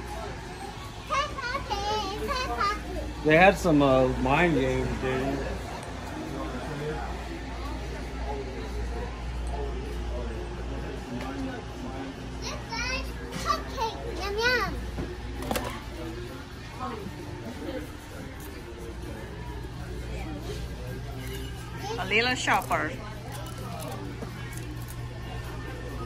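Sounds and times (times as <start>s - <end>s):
shop murmur and hum: 0.0s - 26.0s
children chattering and calling: 0.1s - 3.4s, 12.2s - 15.3s.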